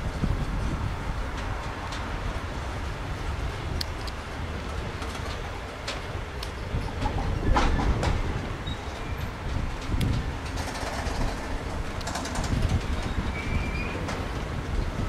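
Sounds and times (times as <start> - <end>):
freight train rolling past: 0.0 - 15.0
train wagons clattering: 0.0 - 15.0
train wheel clicks: 0.1 - 15.0.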